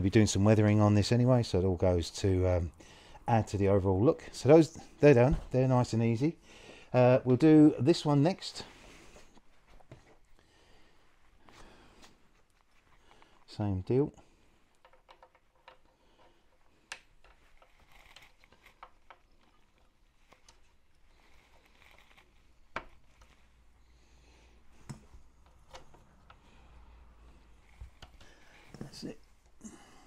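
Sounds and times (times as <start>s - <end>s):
soft rustling: 8.3s - 29.6s.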